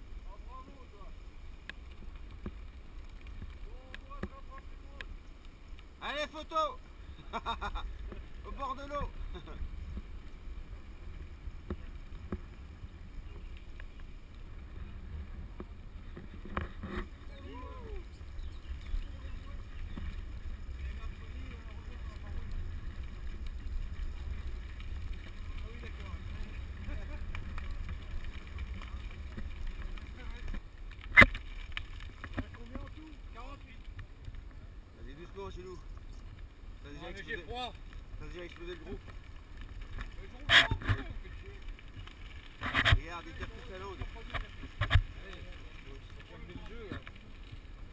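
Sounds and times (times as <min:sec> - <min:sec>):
wind and tyre rumble: 0:00.0 - 0:47.9
riders' voices: 0:00.1 - 0:31.3, 0:32.2 - 0:47.9.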